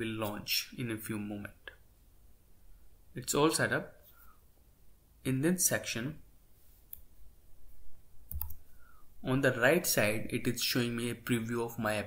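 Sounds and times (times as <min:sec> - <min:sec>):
keyboard key clicks: 0:08.3 - 0:08.6.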